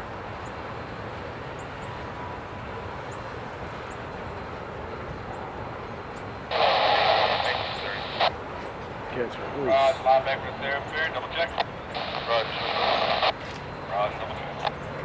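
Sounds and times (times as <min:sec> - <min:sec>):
scanner radio hiss: 0:06.4 - 0:08.4, 0:09.2 - 0:14.8.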